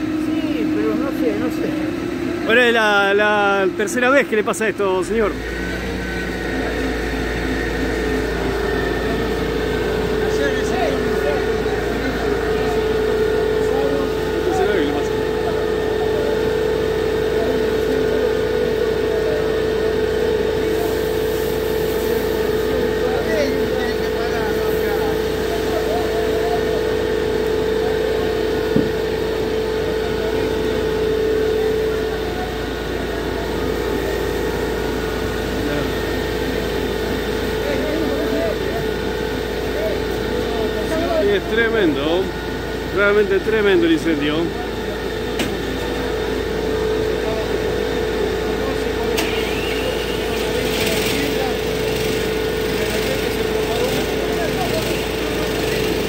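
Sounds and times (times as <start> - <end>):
fire engine motor droning: 0.0 - 56.0.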